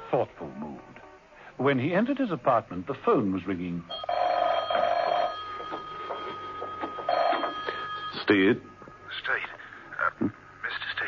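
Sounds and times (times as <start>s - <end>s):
telephone double ring: 3.9s - 8.3s.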